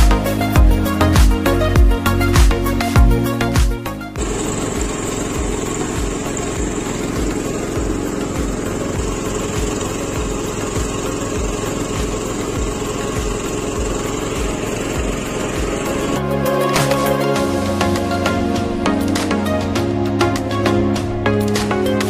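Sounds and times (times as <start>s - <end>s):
walk-behind tractor engine running: 0.0s - 19.5s.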